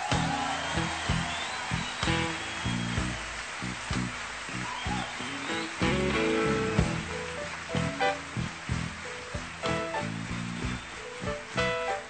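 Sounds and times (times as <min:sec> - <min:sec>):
bass guitar: 0:00.0 - 0:12.0
drums: 0:00.0 - 0:12.0
electric guitar solo: 0:05.3 - 0:08.1.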